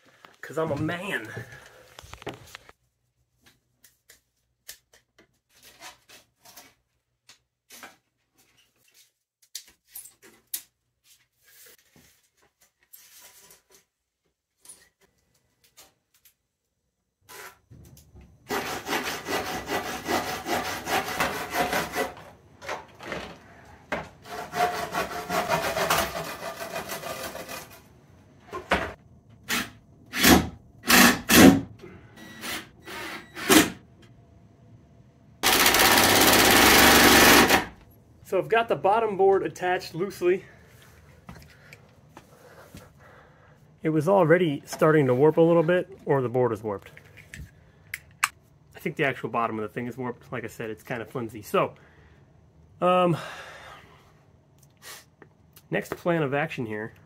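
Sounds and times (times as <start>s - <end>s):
saw cutting wood: 18.5s - 22.3s, 24.2s - 27.8s, 29.5s - 31.6s, 35.4s - 37.8s
cordless drill driving a screw: 35.4s - 37.7s.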